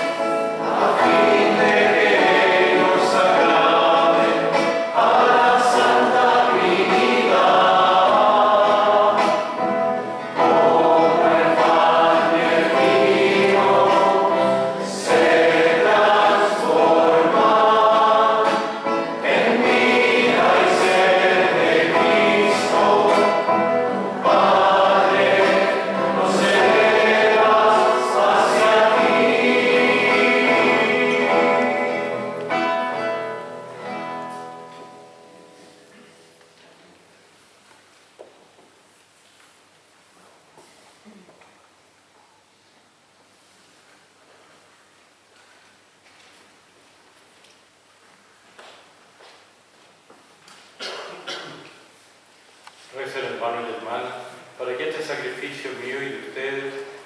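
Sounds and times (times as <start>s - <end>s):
choir singing a hymn: 0.0s - 34.1s.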